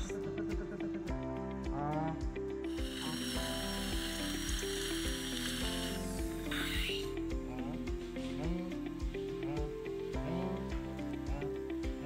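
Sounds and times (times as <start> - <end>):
background music with steady beat: 0.0 - 12.0
water spray hiss: 2.7 - 7.1
dental drill whining: 2.7 - 7.2.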